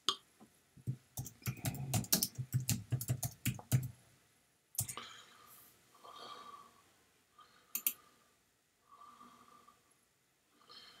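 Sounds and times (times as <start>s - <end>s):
typing on computer keyboard: 1.2s - 3.9s, 4.8s - 5.0s, 7.8s - 8.0s.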